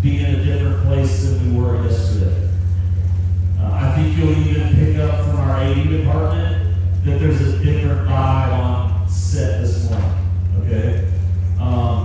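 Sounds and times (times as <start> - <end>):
man's voice over pa: 0.0 - 2.8, 3.6 - 12.0
steady low hum: 0.0 - 12.0.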